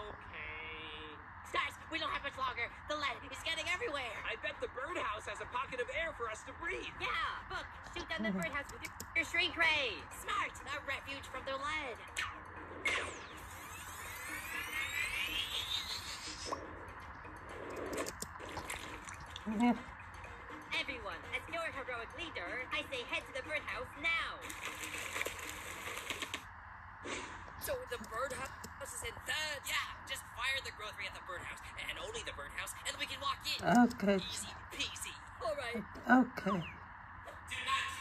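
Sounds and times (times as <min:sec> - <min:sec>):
cartoon background music: 0:06.4 - 0:24.8
bubbly chirping sound effects: 0:12.2 - 0:20.4
rising sweeping whine: 0:12.8 - 0:18.1.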